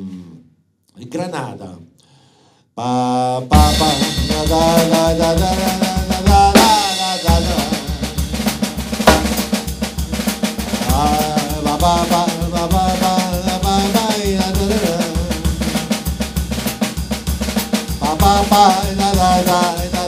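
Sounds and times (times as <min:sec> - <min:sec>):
man singing: 0:02.8 - 0:16.3, 0:17.9 - 0:20.0
cymbal crash: 0:03.6 - 0:05.0, 0:06.6 - 0:11.0
drum kit playing: 0:03.6 - 0:20.0.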